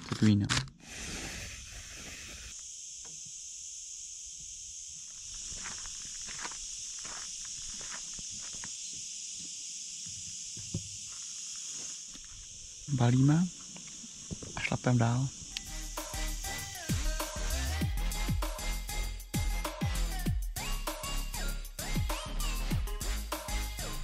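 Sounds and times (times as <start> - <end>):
high-pitched insect chorus: 1.0 - 24.0.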